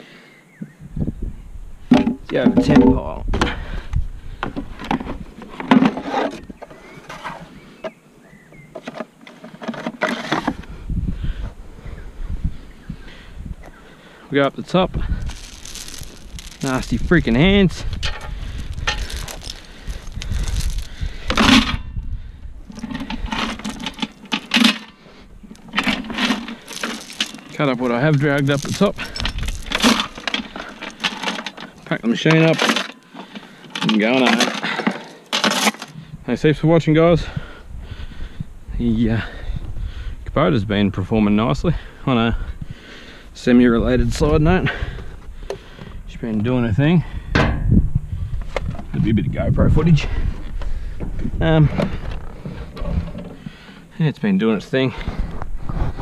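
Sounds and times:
tools clattering into steel bucket: 15.2 - 17.0, 18.0 - 21.9, 22.7 - 24.9, 25.6 - 35.9.

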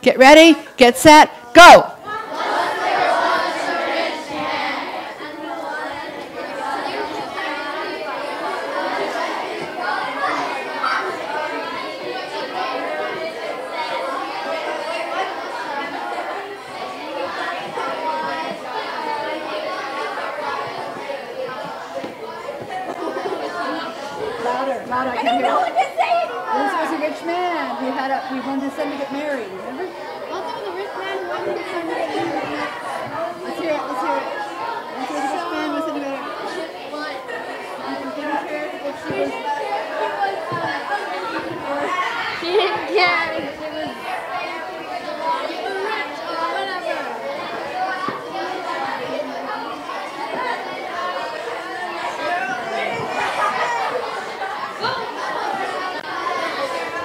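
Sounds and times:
babble of students' voices: 0.0 - 57.0.

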